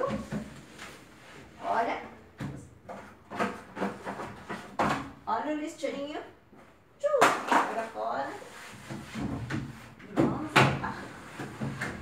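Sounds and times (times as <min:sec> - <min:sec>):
cloth wiping shelving: 0:07.9 - 0:12.0.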